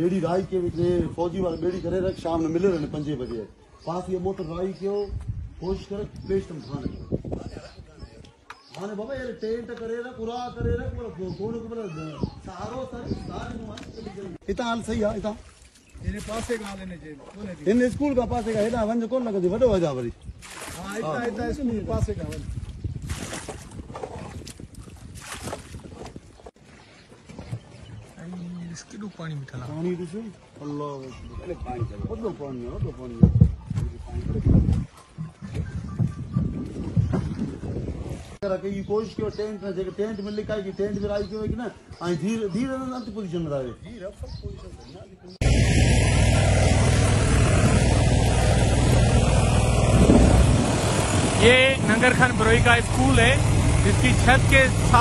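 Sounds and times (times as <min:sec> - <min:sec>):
wind buffeting microphone: 0:00.0 - 0:26.6, 0:31.1 - 0:55.0
rushing splashing water: 0:14.9 - 0:17.6, 0:20.4 - 0:21.3, 0:22.2 - 0:27.0
boat motor running: 0:45.4 - 0:55.0.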